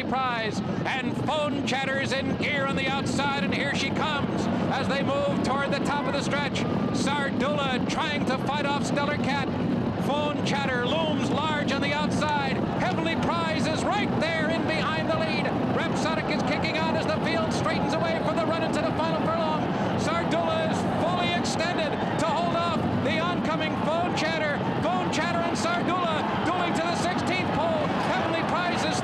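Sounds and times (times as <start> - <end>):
man commentating: 0.0 - 29.0
crowd roar: 12.8 - 29.0.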